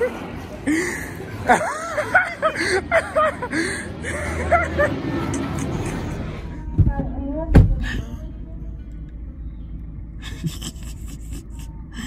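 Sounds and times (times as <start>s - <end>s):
faint voices: 0.0s - 9.4s.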